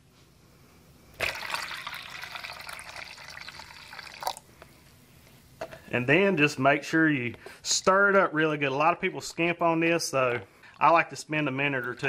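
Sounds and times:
liquid pouring into plastic cup: 0:01.2 - 0:04.5.

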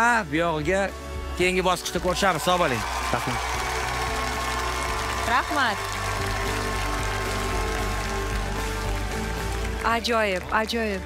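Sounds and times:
music with sustained chords: 0:00.0 - 0:11.0.

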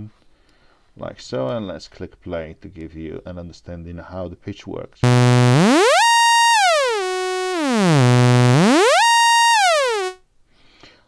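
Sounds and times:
buzzy synthesizer note gliding: 0:05.0 - 0:10.2.

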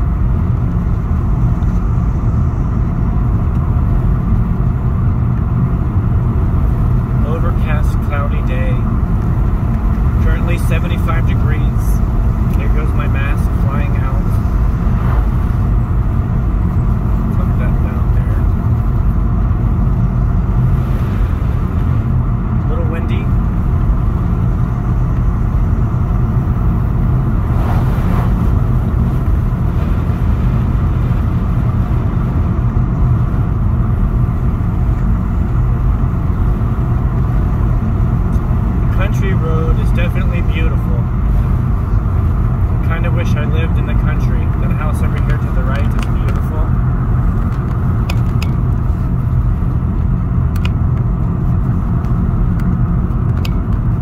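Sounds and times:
car road noise inside cabin: 0:00.0 - 0:54.0.

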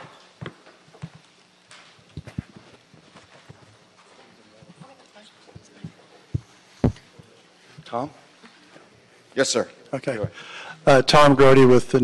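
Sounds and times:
footsteps on hard floor: 0:02.0 - 0:07.9
microphone handling noise: 0:05.6 - 0:07.3.

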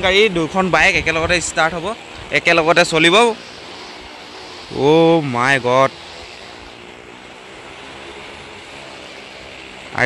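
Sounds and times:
car and motorcycle engines running: 0:00.0 - 0:10.0.

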